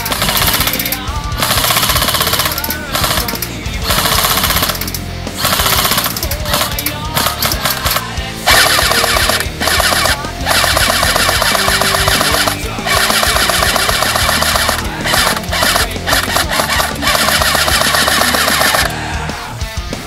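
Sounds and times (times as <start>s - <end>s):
airsoft gun full-auto bursts: 0.0s - 19.2s
loud background music: 0.0s - 20.0s.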